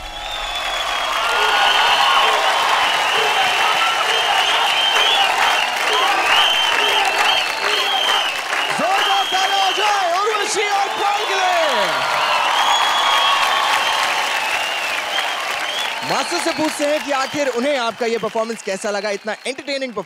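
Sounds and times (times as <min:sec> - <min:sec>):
audience applauding and cheering: 0:00.0 - 0:20.0.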